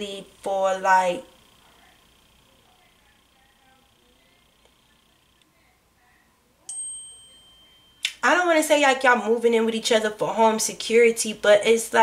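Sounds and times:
bright ding: 6.7s - 8.2s.

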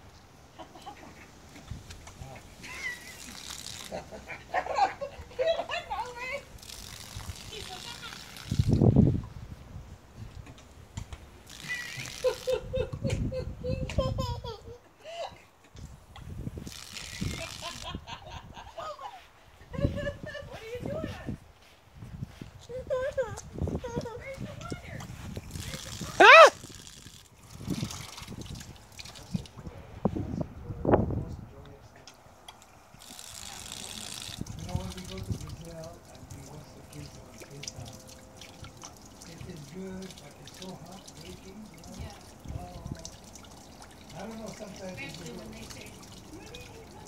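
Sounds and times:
fountain trickling and dripping: 0.0s - 13.1s, 15.9s - 18.1s, 22.7s - 29.8s, 32.0s - 47.0s
toddler babbling and squealing: 26.0s - 26.6s.

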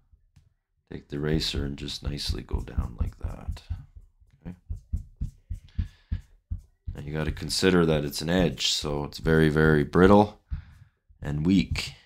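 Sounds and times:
dull thumps: 1.3s - 12.0s.

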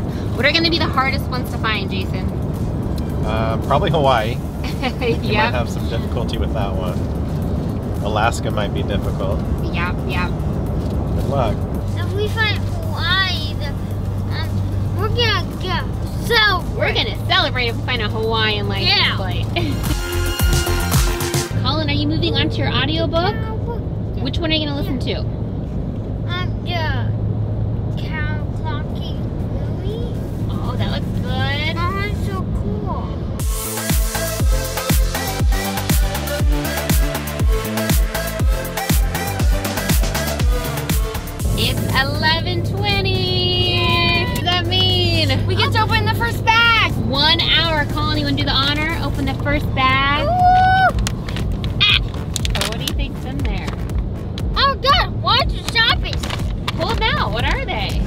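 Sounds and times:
voices: 0.0s - 2.4s, 3.2s - 7.0s, 11.1s - 19.8s, 21.5s - 25.3s, 28.0s - 33.2s, 41.4s - 50.9s, 51.7s - 53.8s, 54.4s - 58.0s
car road and engine drone: 0.0s - 58.0s
car cabin hum: 41.4s - 58.0s
high-pitched excited vocal sounds: 43.4s - 46.9s, 50.1s - 51.0s, 54.4s - 56.3s
paper gift bag crinkling: 51.0s - 53.0s, 55.6s - 57.4s.

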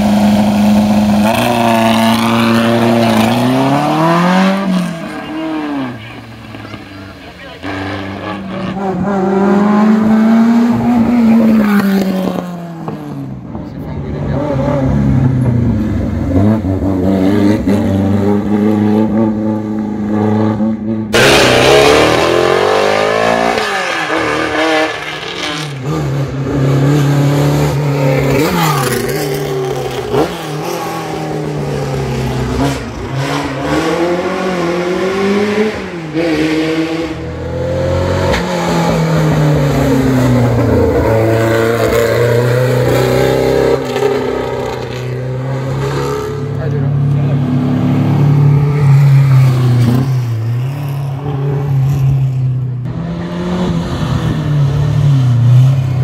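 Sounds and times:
racing car engines at full throttle: 0.0s - 56.0s.

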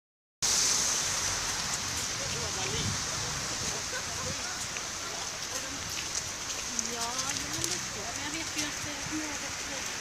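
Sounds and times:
city traffic: 0.4s - 10.0s
tyres on slushy road: 0.4s - 10.0s.

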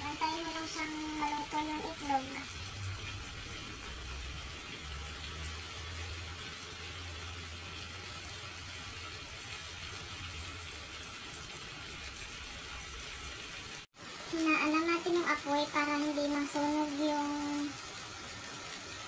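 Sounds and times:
food simmering in a frying pan: 0.0s - 19.0s.

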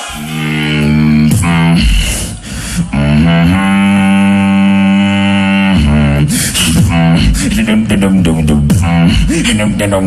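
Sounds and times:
beatboxer buzzing bass note: 0.0s - 10.0s.

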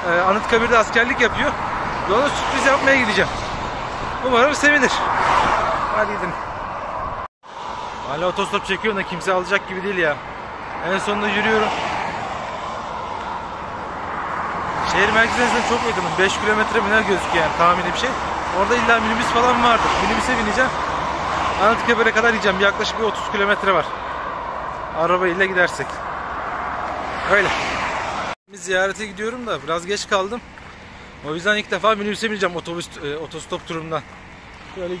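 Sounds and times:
motorway traffic rushing: 0.0s - 35.0s.

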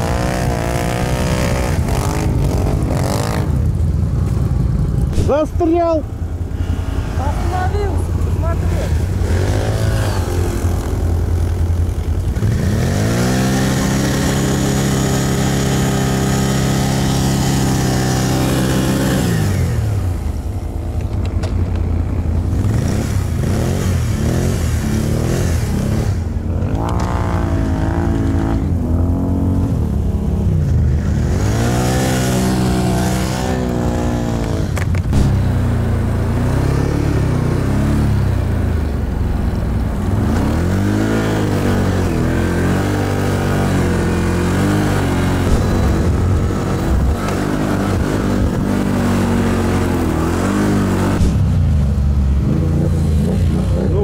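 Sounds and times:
atv engine revving: 0.0s - 54.0s
atv engine idling: 1.6s - 31.3s.

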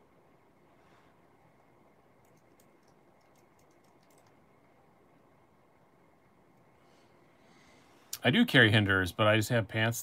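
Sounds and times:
keyboard typing: 2.2s - 4.4s.

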